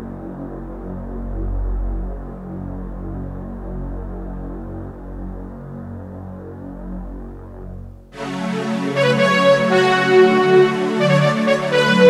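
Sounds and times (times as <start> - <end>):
keyboard sustained chords: 0.0 - 12.0.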